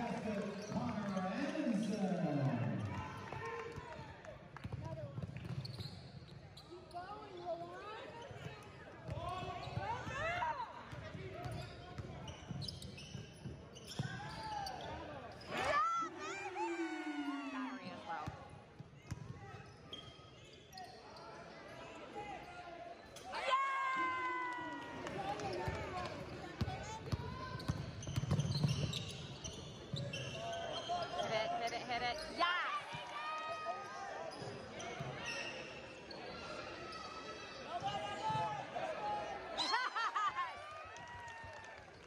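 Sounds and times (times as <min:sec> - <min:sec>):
voices echoing in gym: 0:00.0 - 0:05.2, 0:06.4 - 0:12.4, 0:13.6 - 0:28.2, 0:29.2 - 0:41.4.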